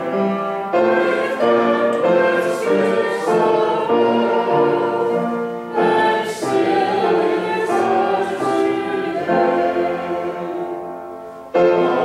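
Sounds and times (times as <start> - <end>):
congregation singing a hymn: 0.0 - 12.0
keyboard accompaniment: 0.0 - 12.0.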